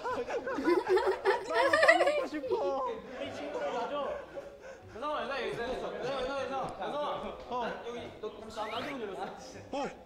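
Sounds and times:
men laughing: 0:00.0 - 0:02.6
young men talking: 0:00.0 - 0:10.0.

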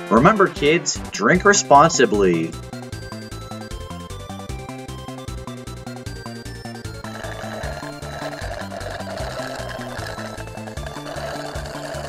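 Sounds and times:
bouncy game music: 0:00.0 - 0:12.0
cartoon straw slurping: 0:06.9 - 0:12.0.

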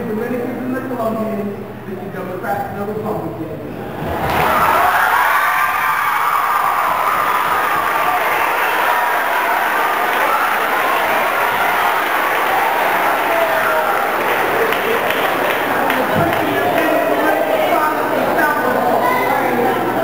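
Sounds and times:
audience applauding and cheering: 0:03.9 - 0:17.8.

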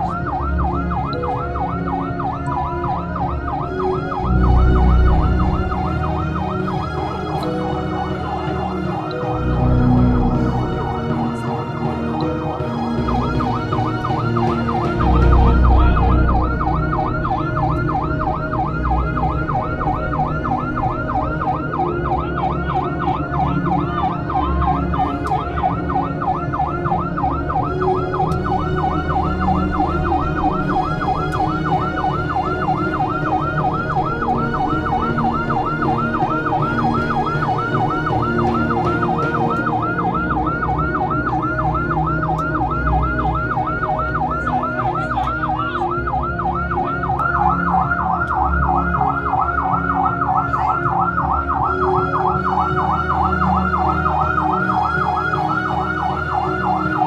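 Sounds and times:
fast warbling siren-like tone: 0:00.0 - 0:57.0.

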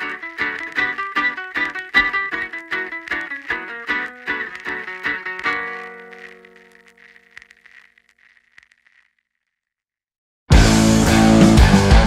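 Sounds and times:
rock guitar music: 0:00.0 - 0:06.9, 0:10.5 - 0:12.0.

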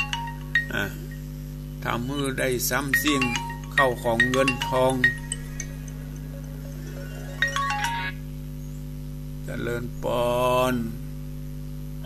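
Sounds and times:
low hum: 0:00.0 - 0:12.0
descending electronic chime notes: 0:03.0 - 0:08.2.

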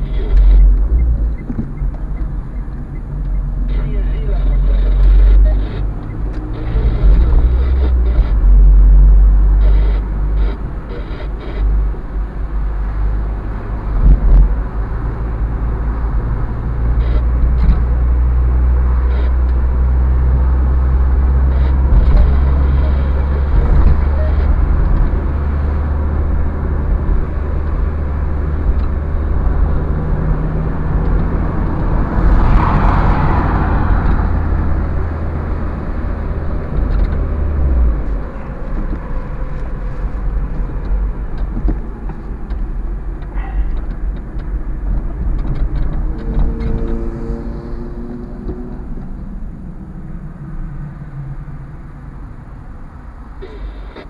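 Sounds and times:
car engine drone: 0:00.0 - 0:54.0
road noise inside car: 0:00.0 - 0:54.0.

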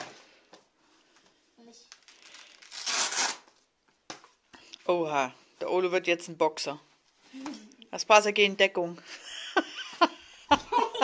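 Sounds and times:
velcro strap ripping open: 0:01.9 - 0:03.6.

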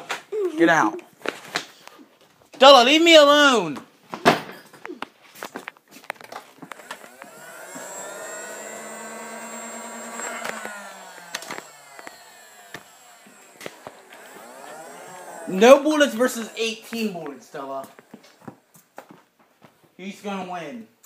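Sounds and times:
toy blaster flywheel motor whine: 0:06.7 - 0:18.8.

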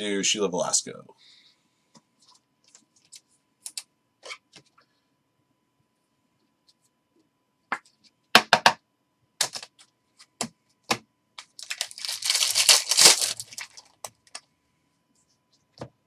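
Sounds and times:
foil wrapper tearing and crinkling: 0:11.4 - 0:14.0.

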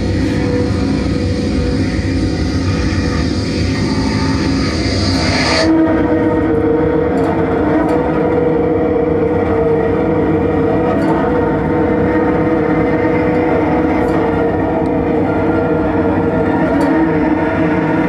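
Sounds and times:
high hiss: 0:00.0 - 0:06.8
low drone rumble: 0:00.0 - 0:18.0.

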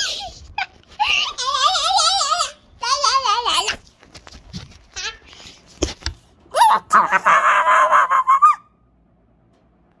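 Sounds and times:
girl screeching: 0:06.5 - 0:08.7.

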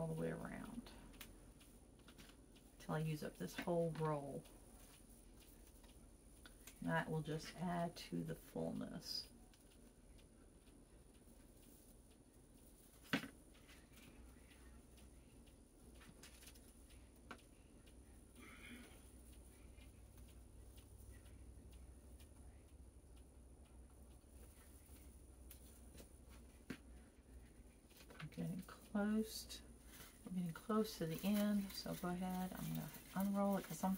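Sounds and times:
low steady hum: 0:00.0 - 0:33.9.

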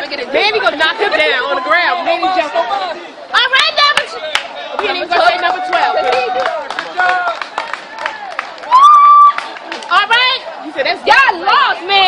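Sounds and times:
people shouting and chattering: 0:00.0 - 0:12.0
loud held yell: 0:08.0 - 0:09.4.

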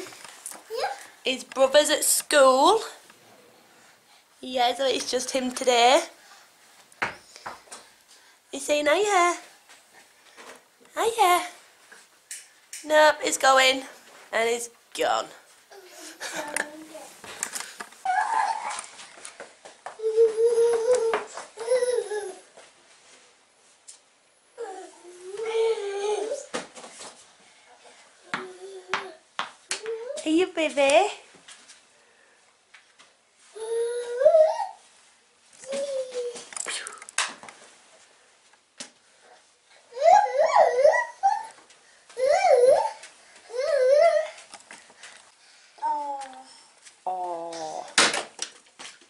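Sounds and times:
toddler whining: 0:18.0 - 0:18.8, 0:20.0 - 0:22.5, 0:24.6 - 0:26.5, 0:33.5 - 0:34.8, 0:35.6 - 0:36.5, 0:39.9 - 0:41.6, 0:42.2 - 0:44.5.

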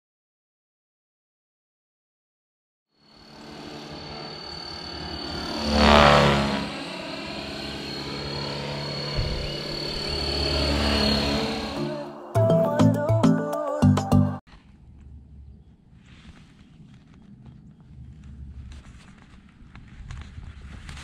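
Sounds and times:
model helicopter rotor noise: 0:03.0 - 0:11.8
high-pitched motor whine: 0:03.0 - 0:12.3.

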